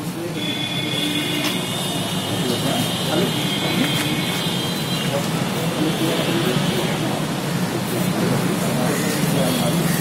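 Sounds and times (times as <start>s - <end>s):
people talking indistinctly: 0.0s - 10.0s
traffic noise: 0.0s - 10.0s.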